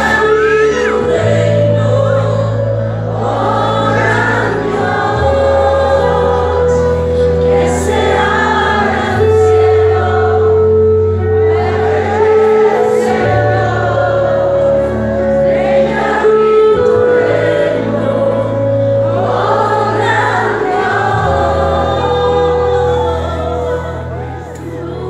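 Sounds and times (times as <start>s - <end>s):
group of voices singing: 0.0s - 25.0s
long held bass notes: 0.0s - 25.0s.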